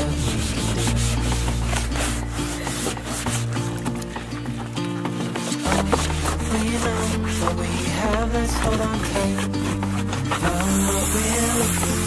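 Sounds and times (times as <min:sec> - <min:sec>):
background song: 0:00.0 - 0:12.0
sponge scrubbing plastic tub: 0:00.0 - 0:12.0.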